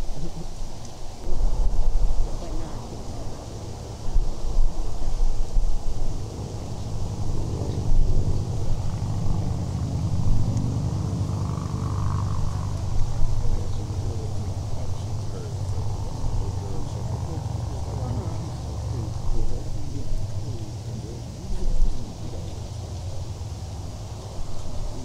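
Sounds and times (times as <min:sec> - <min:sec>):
faint background voices: 0:00.0 - 0:25.0
low engine rumble: 0:00.0 - 0:25.0.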